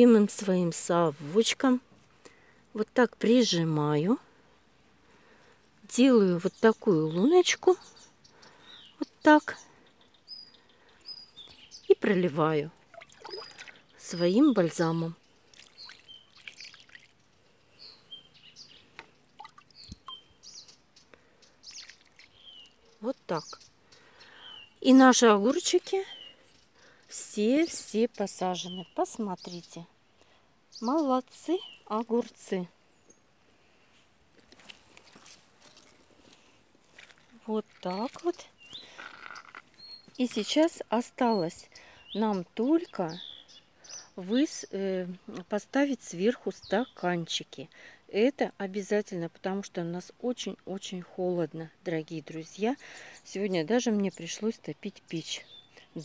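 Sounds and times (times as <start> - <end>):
small bird chirping: 6.4 - 30.0, 34.9 - 45.3, 52.3 - 56.0.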